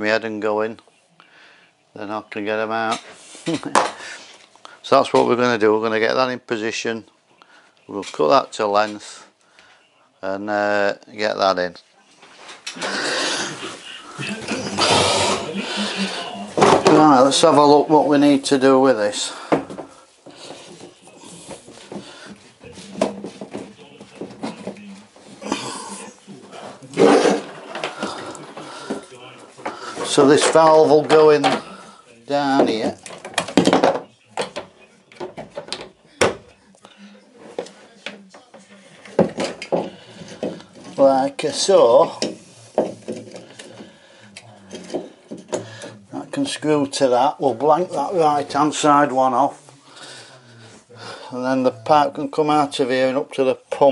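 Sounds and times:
plastic hose rustling and scraping: 12.1s - 35.9s, 37.4s - 53.9s.

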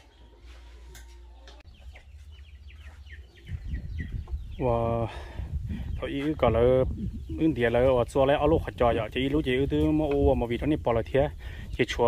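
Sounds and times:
chickens clucking: 0.0s - 6.5s.

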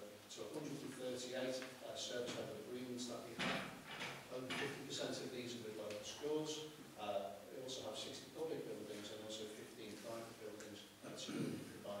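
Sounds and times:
man speaking over microphone: 0.0s - 3.6s, 4.3s - 12.0s.

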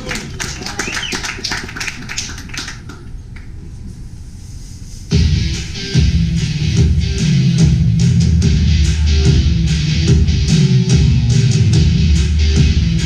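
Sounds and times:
audience applauding: 0.0s - 3.2s
guitar rock music: 5.1s - 13.0s.

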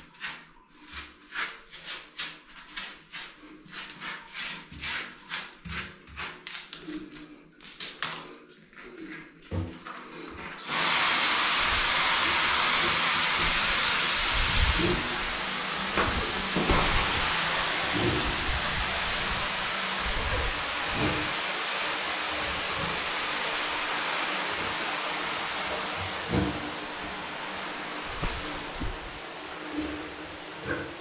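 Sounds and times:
shower water running on tiles: 0.0s - 31.0s.

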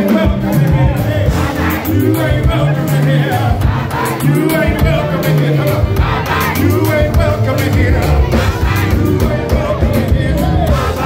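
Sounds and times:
crowd singing and shouting: 0.0s - 11.0s
loud dance music: 0.0s - 11.0s.

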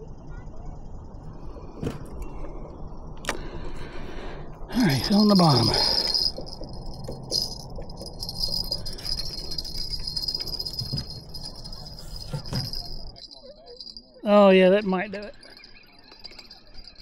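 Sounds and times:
high-pitched insect drone: 4.7s - 17.0s.

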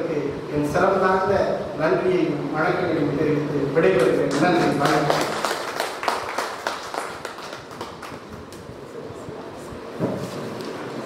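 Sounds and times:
audience clapping: 4.0s - 8.6s.

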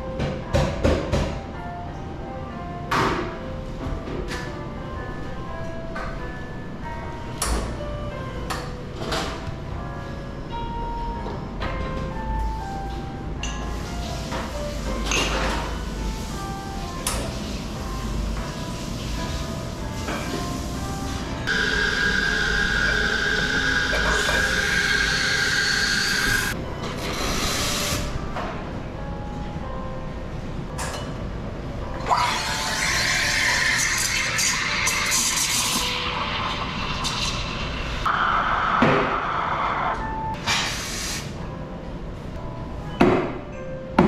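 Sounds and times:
background music: 0.0s - 44.0s
espresso machine hissing and whistling: 21.5s - 28.1s, 32.1s - 41.4s.

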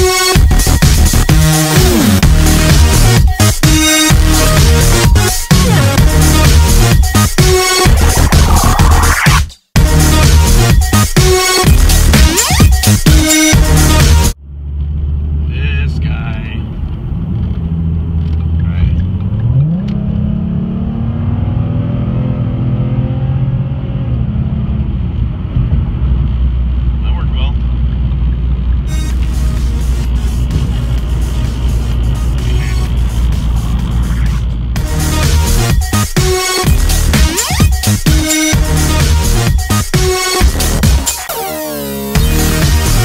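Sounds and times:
road noise: 0.0s - 10.8s, 13.5s - 43.0s
car engine drone: 0.0s - 43.0s.

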